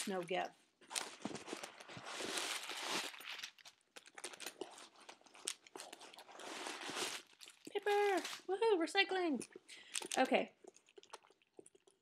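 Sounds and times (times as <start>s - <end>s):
paper crinkling and rustling: 0.0s - 8.5s
sharp paper crackles: 0.9s - 4.4s, 6.2s - 8.5s.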